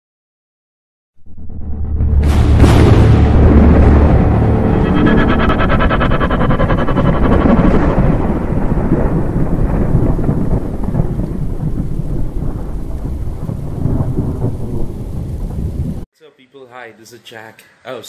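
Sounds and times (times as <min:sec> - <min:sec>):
thunder rumbling: 0:02.2 - 0:16.1
steady rain: 0:08.0 - 0:16.0.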